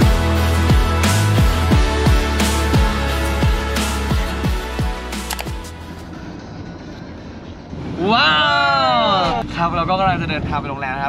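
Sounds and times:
van road noise: 0.0s - 11.0s.

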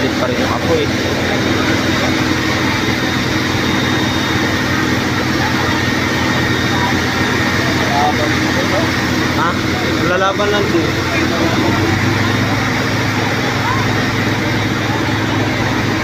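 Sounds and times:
crowd chatter: 0.0s - 16.0s
fire truck engine humming: 0.0s - 16.0s.

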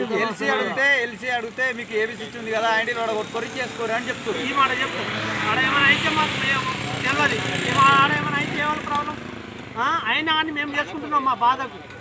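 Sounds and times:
vehicle passing: 1.5s - 10.2s.

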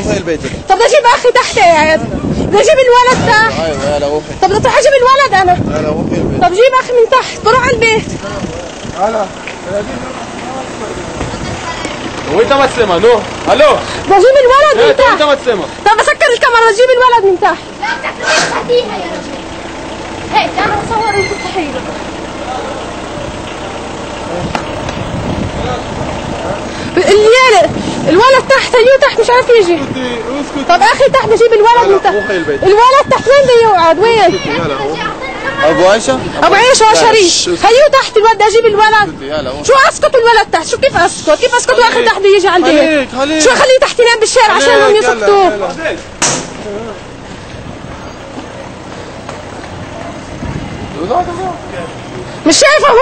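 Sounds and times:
indistinct voices: 0.0s - 53.0s
steady background noise: 0.0s - 53.0s
sharp click: 46.2s - 46.6s.

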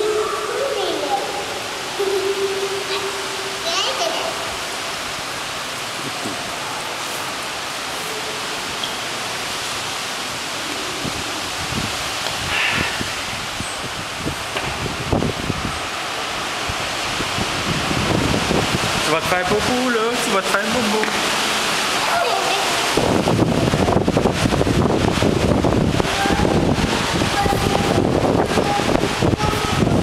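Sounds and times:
faint voices: 0.0s - 4.8s
steady rushing noise: 0.0s - 30.0s.

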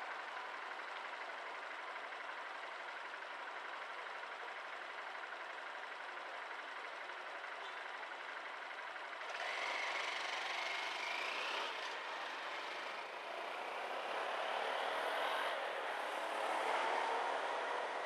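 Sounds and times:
city traffic: 6.4s - 18.0s
vehicle accelerating with whine: 9.2s - 18.0s.

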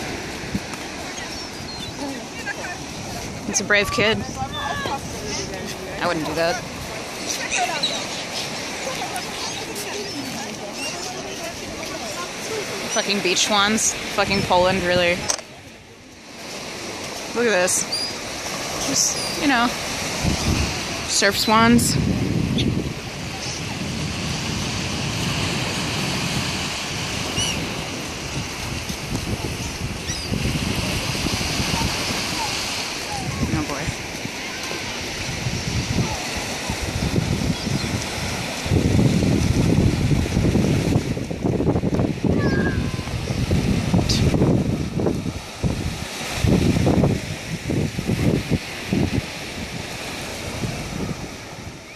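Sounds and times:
small waves breaking on shore: 0.0s - 51.9s
wind buffeting microphone: 0.0s - 51.9s
gull calls: 4.4s - 5.5s.

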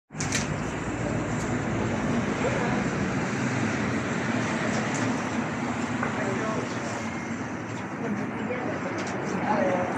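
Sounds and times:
traffic noise: 0.1s - 9.9s.

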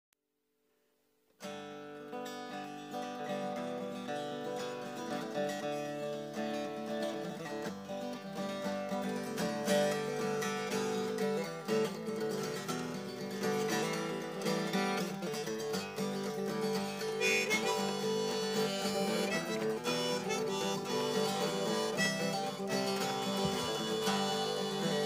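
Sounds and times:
acoustic guitar strumming: 1.4s - 25.0s
harmonica melody: 3.3s - 25.0s.

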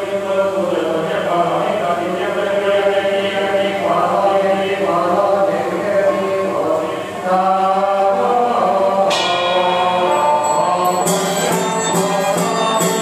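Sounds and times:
congregation chanting prayers: 0.0s - 13.0s
ringing metallic strike: 9.1s - 13.0s.

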